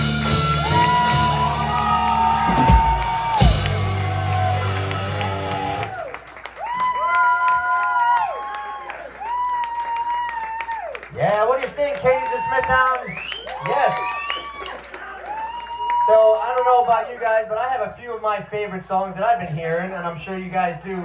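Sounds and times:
heavy band hits: 0.0 - 6.0
live rock band playing: 0.0 - 6.0.

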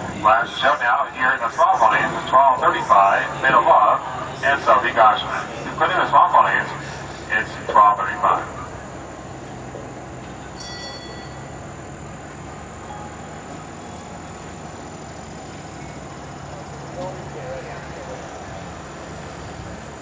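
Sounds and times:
public address announcer voice: 0.0 - 9.2
outdoor background noise: 0.0 - 20.0.

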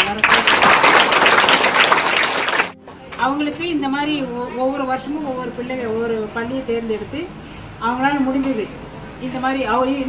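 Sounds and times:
many hands clapping: 0.0 - 3.2.

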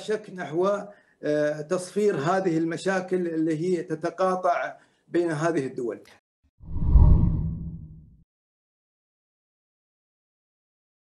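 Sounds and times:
deep whoosh: 6.6 - 8.1.

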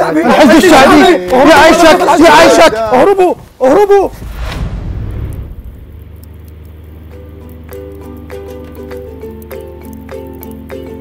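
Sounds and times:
low rumble with hiss: 1.4 - 11.0.

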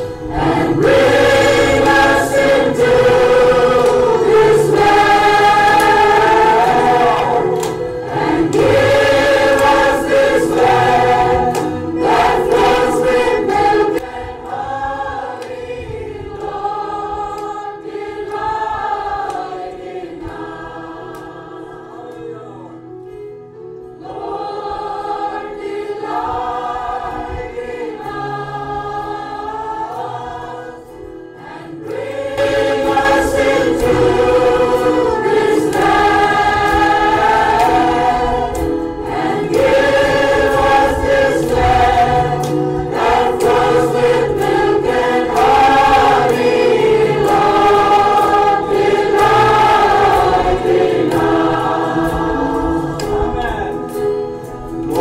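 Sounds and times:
congregation singing: 0.0 - 55.0.

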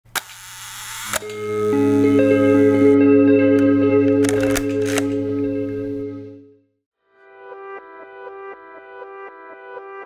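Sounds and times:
held music notes: 1.2 - 6.6
camera shutter clicks: 4.2 - 5.2.

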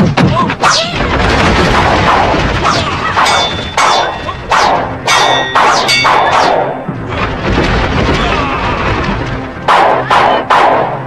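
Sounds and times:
blades clashing: 0.0 - 11.0.

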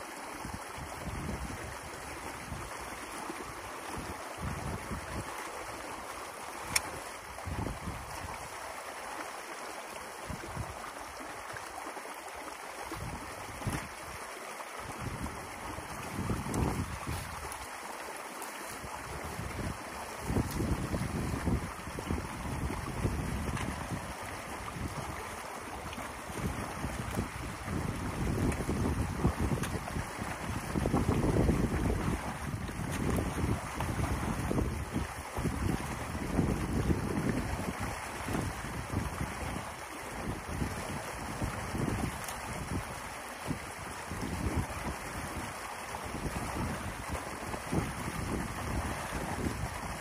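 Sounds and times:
water rushing: 0.0 - 50.0
wind buffeting microphone: 0.4 - 2.8, 3.9 - 5.3, 7.3 - 8.5, 14.9 - 17.7, 18.8 - 50.0.

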